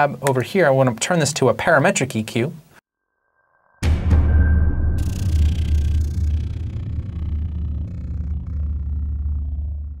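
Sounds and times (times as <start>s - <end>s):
whoosh: 3.2s - 10.0s
low bass drone: 3.8s - 10.0s.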